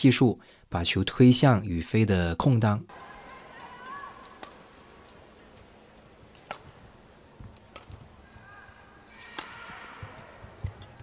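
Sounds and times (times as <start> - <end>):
racket striking shuttlecock: 3.6 - 5.3, 6.3 - 8.5, 9.1 - 11.0
shoes squeaking on court: 6.4 - 11.0.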